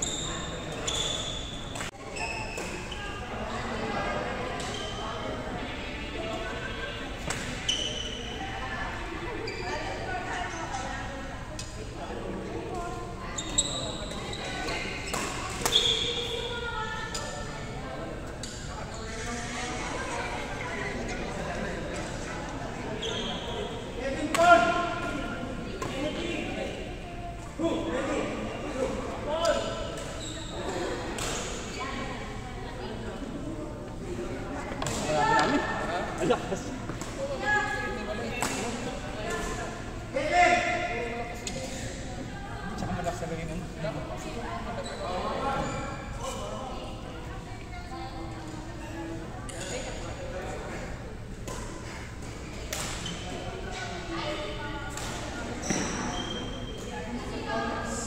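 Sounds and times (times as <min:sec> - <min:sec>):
sneaker squeaks on court floor: 0:00.0 - 0:03.2, 0:04.6 - 0:05.0, 0:07.4 - 0:08.4, 0:13.3 - 0:16.4, 0:23.0 - 0:23.8, 0:29.8 - 0:31.8, 0:44.8 - 0:46.3, 0:52.9 - 0:53.5, 0:55.5 - 0:56.9
background chatter: 0:00.0 - 0:58.0
voices echoing in a hall: 0:00.0 - 0:58.0.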